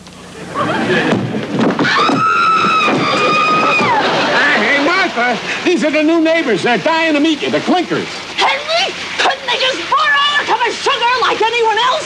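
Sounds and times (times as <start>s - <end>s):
laughter: 0.4s - 1.2s, 3.0s - 5.6s
sharp knocks: 1.1s - 4.0s
woman screaming: 1.8s - 4.1s, 8.4s - 11.3s.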